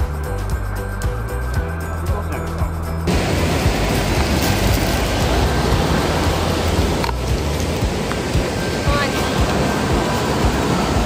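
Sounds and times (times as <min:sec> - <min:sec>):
background music: 0:00.0 - 0:11.0
river rushing over rocks: 0:03.1 - 0:11.0.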